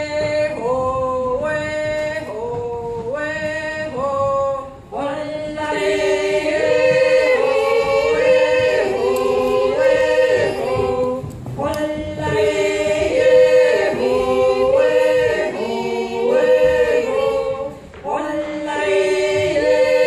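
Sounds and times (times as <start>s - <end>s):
women yodeling a cappella: 0.0s - 20.0s.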